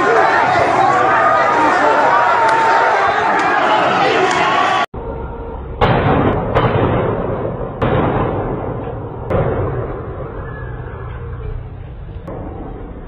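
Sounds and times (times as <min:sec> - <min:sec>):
crowd voices: 0:00.0 - 0:05.8, 0:09.8 - 0:13.0
loud echoing bangs: 0:05.7 - 0:11.1.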